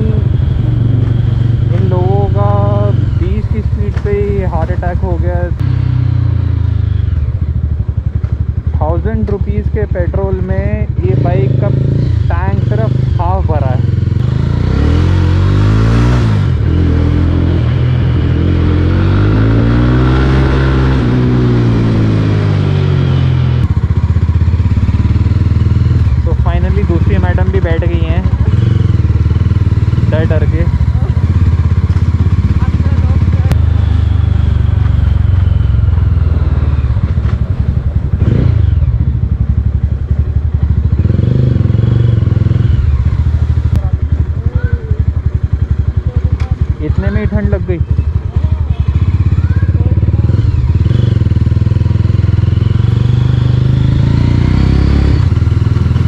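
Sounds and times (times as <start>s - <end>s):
motorcycle engine and exhaust: 0.0s - 56.0s.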